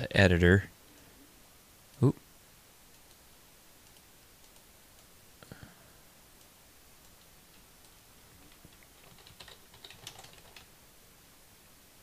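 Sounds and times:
computer keyboard typing: 0:07.0 - 0:10.7.

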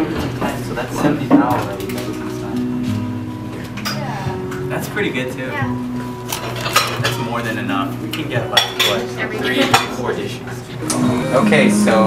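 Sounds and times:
plates and cutlery clinking: 0:03.6 - 0:04.8, 0:06.2 - 0:10.4.

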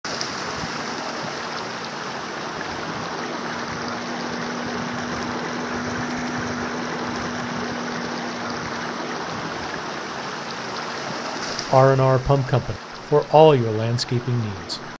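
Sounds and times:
water running down waterfall: 0:00.1 - 0:14.9.

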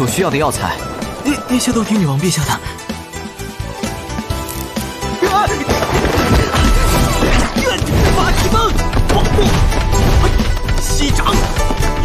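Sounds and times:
dramatic score: 0:00.0 - 0:12.0.

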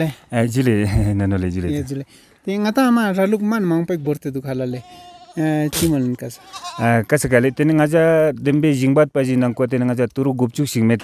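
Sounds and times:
man speaking: 0:00.0 - 0:11.0
goats bleating: 0:03.7 - 0:07.9.

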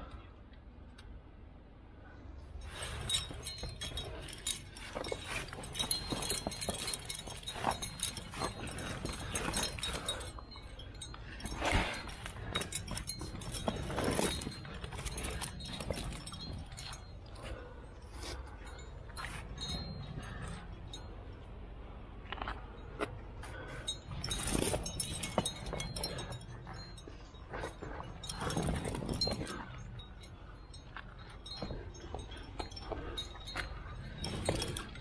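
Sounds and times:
carabiners clinking and jangling: 0:02.0 - 0:35.0.

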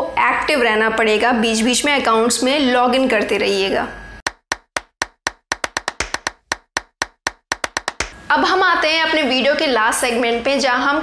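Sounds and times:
sharp clap-like percussion hits: 0:04.2 - 0:08.2.

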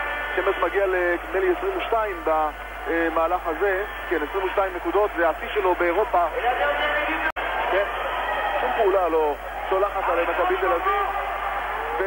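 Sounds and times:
tv commentator talking: 0:00.3 - 0:08.0, 0:08.6 - 0:11.2.

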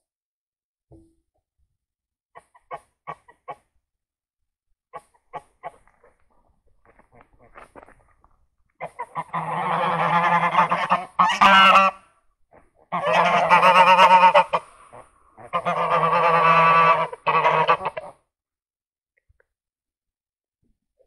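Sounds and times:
geese honking: 0:08.8 - 0:12.0, 0:12.8 - 0:18.2.

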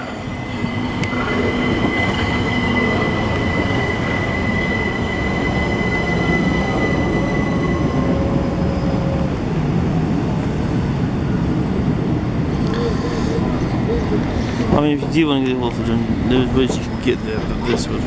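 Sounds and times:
electric train braking: 0:00.0 - 0:09.9
high whine: 0:00.0 - 0:18.0.

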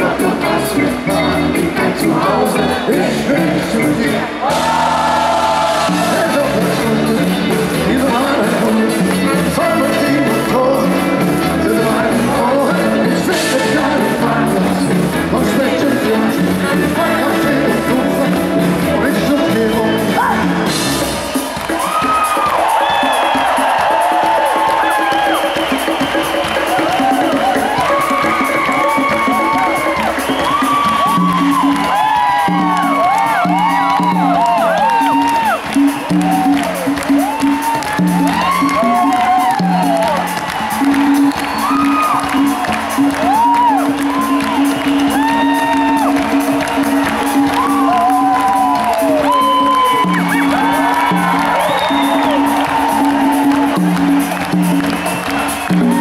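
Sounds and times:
crowd cheering and singing along: 0:00.0 - 0:56.0
live rock band playing: 0:00.0 - 0:56.0.

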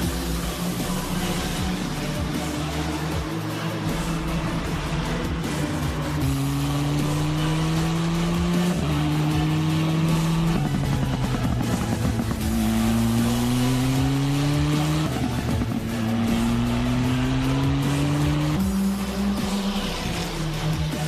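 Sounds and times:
music: 0:00.0 - 0:21.0
race car engine accelerating: 0:00.0 - 0:21.0.

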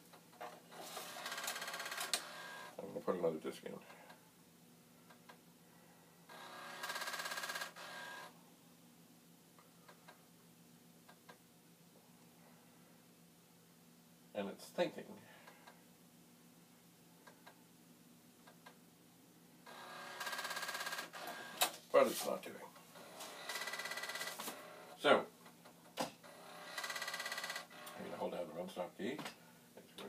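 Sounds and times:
floppy disk drive buzzing: 0:00.7 - 0:02.8, 0:06.3 - 0:08.3, 0:19.6 - 0:21.8, 0:26.2 - 0:28.2.

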